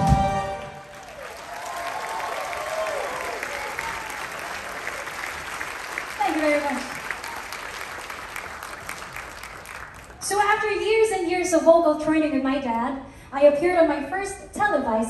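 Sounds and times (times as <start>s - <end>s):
audience applauding and cheering: 0.0s - 10.4s
whoops: 0.9s - 5.4s.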